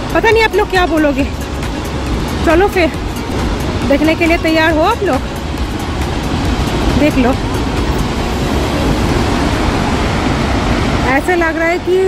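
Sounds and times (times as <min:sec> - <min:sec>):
large waterfall roaring: 0:00.0 - 0:12.0.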